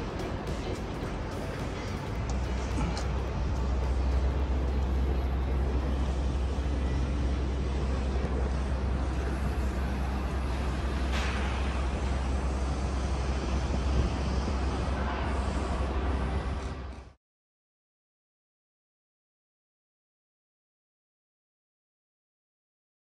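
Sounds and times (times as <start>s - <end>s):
low rumble of city traffic: 0.0s - 17.2s.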